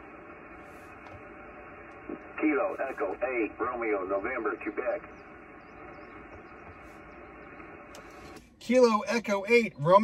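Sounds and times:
radio band noise hiss: 0:00.0 - 0:10.0.

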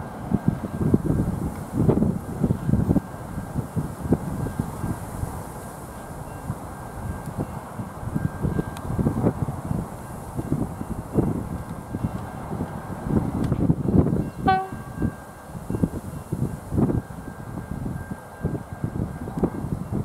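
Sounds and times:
wind buffeting microphone: 0:00.0 - 0:20.0
train horn toot: 0:14.4 - 0:15.1.

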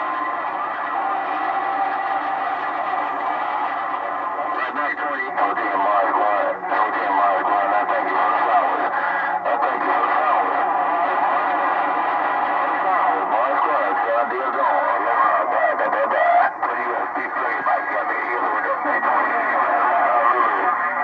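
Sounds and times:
garbled radio voices: 0:00.0 - 0:21.0
radio static: 0:00.0 - 0:21.0.

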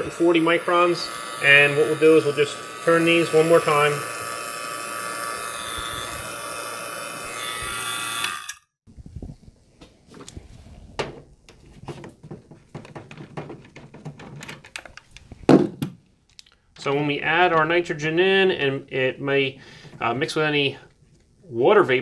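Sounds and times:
vacuum pump running: 0:00.0 - 0:08.6.

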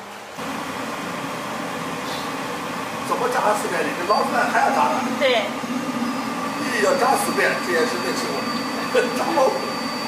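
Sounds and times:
gas stove running: 0:00.0 - 0:10.0
faint hum: 0:00.1 - 0:10.0.

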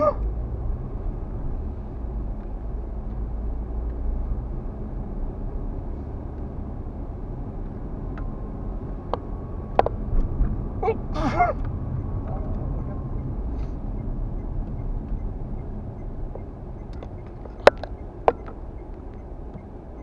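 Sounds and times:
car engine and road noise: 0:00.0 - 0:20.0.

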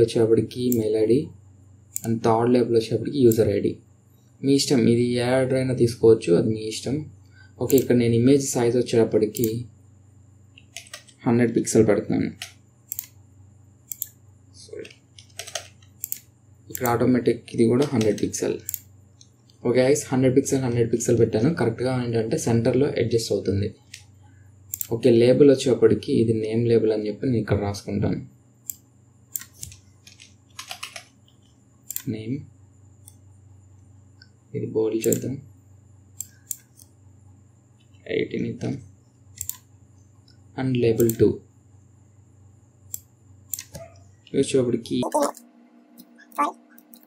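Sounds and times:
faint high-pitched electrical whine: 0:00.0 - 0:47.0
computer mouse clicks: 0:01.9 - 0:02.2, 0:07.6 - 0:08.0, 0:09.3 - 0:09.6, 0:10.6 - 0:11.2, 0:12.4 - 0:13.2, 0:13.9 - 0:14.2, 0:14.8 - 0:17.0, 0:17.8 - 0:19.6, 0:24.7 - 0:25.0, 0:28.6 - 0:32.1, 0:35.0 - 0:35.3, 0:36.2 - 0:37.0, 0:39.4 - 0:40.4, 0:41.0 - 0:41.2, 0:42.9 - 0:44.0
computer keyboard keystrokes: 0:10.6 - 0:11.2, 0:14.8 - 0:17.0, 0:29.3 - 0:32.1.

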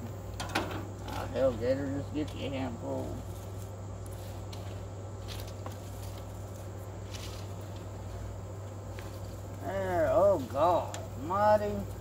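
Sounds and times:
steady low hum: 0:00.0 - 0:12.0
wood chips rustling: 0:03.0 - 0:09.7.

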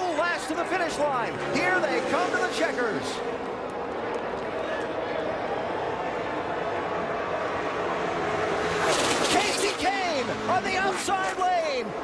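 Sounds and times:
race car engines drone: 0:00.0 - 0:12.0.

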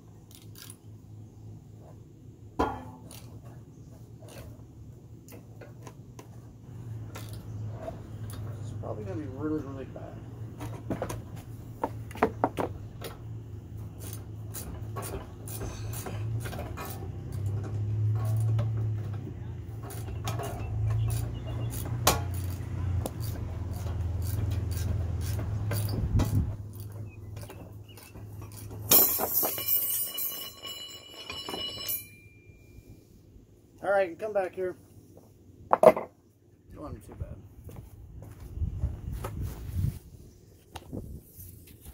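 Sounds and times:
small metallic clicks of tools: 0:00.2 - 0:00.8
loud metallic clatter: 0:28.4 - 0:30.6
steel ringing: 0:28.9 - 0:32.9.

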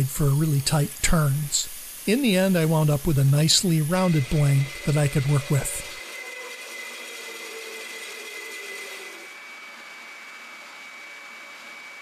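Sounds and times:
power tool motor humming: 0:02.7 - 0:09.4.

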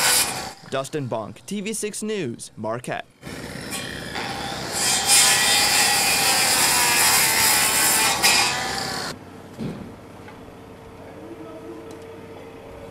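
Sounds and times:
circular saw cutting wood: 0:00.0 - 0:01.0, 0:03.2 - 0:09.2.

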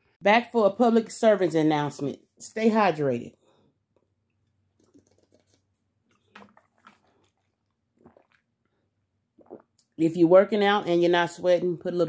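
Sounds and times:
person gulping water: 0:04.7 - 0:10.0.

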